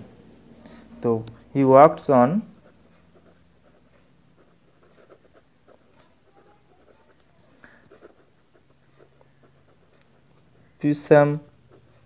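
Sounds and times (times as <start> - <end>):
pen scratching on paper: 1.9 - 12.0.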